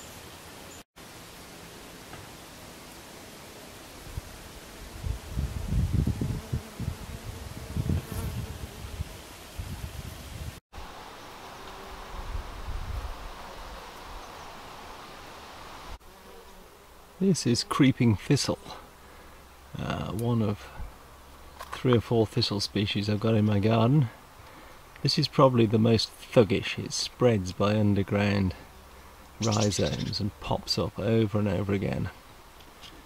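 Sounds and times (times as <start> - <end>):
outdoor hiss: 0.0 - 7.6, 8.7 - 23.0, 23.8 - 29.7
flying insects buzzing: 0.0 - 17.9.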